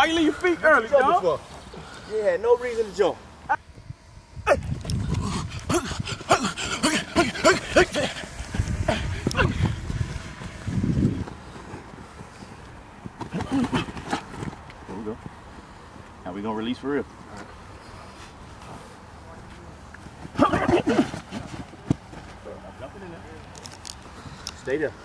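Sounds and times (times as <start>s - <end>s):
people calling and exclaiming: 4.4s - 10.3s.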